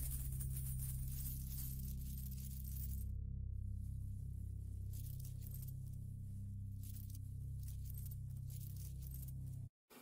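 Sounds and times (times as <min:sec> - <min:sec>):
coins clinking as they fall: 0:00.0 - 0:03.0, 0:06.8 - 0:09.5
low bass drone: 0:00.0 - 0:09.7.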